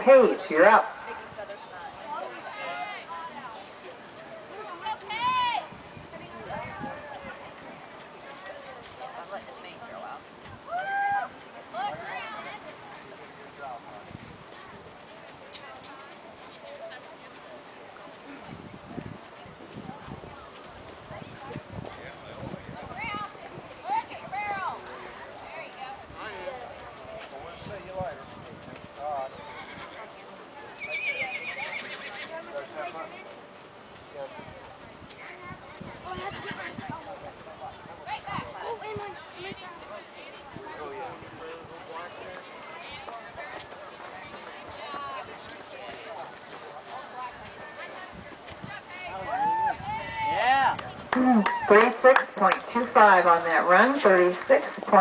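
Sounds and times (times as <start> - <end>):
background chatter: 0.0 - 55.0
hooves on soft dirt: 0.0 - 55.0
voices: 0.0 - 55.0
horse whinnying: 30.8 - 32.3.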